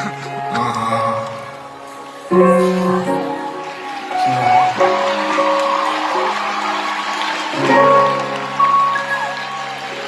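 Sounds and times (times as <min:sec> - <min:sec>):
live band playing held chords: 0:00.0 - 0:10.0.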